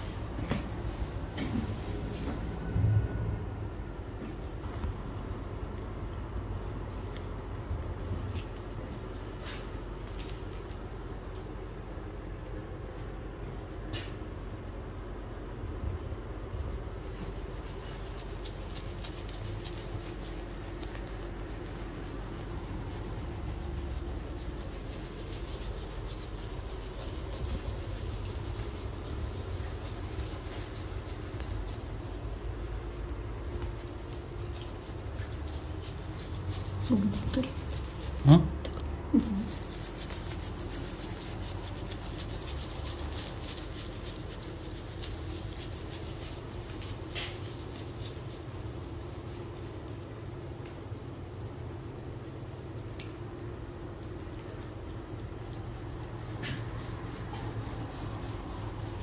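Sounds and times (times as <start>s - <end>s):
low rumble: 1.0s - 6.6s
shaving brush scratching stubble: 16.6s - 38.6s, 39.2s - 49.9s, 53.8s - 59.0s.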